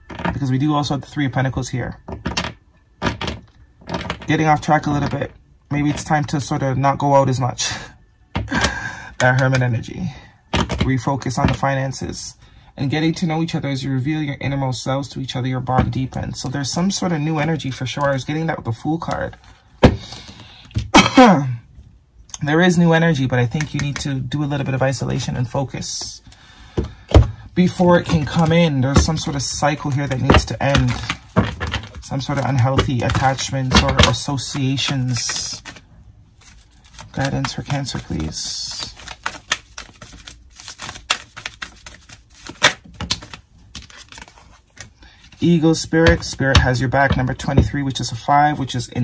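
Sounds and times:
woman coughing loudly: 0:20.9 - 0:21.6
cards being shuffled: 0:23.4 - 0:47.8.

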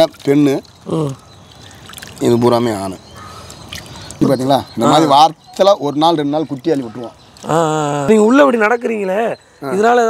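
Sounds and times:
water splashing and trickling: 0:00.0 - 0:10.0
man speaking: 0:04.2 - 0:10.0.

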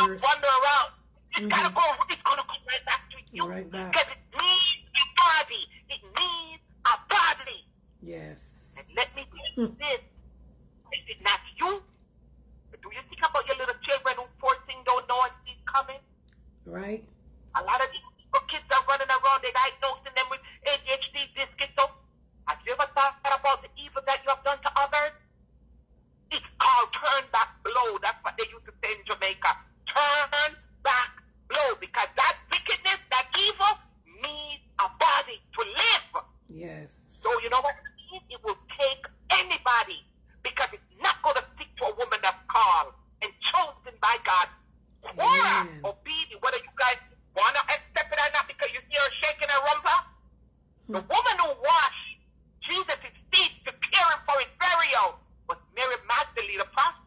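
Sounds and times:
person talking: 0:00.0 - 0:10.0, 0:16.7 - 0:17.0, 0:26.3 - 0:50.0, 0:50.9 - 0:52.1
drawn-out exclamation: 0:45.0 - 0:45.9.

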